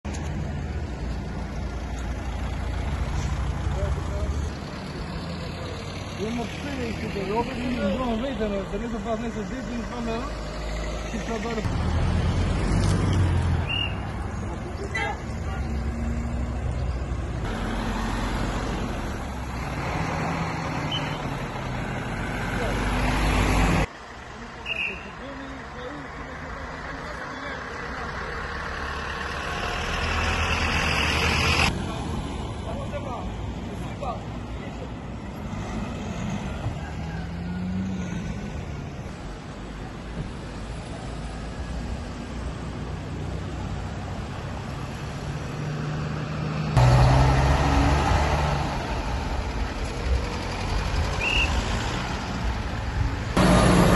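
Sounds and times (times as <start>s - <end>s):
cars passing: 0.1s - 53.9s.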